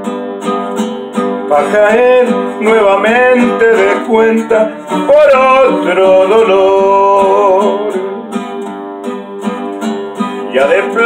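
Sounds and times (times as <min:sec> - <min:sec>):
acoustic guitar strumming: 0:00.0 - 0:11.0
person singing: 0:01.4 - 0:08.6, 0:10.3 - 0:11.0.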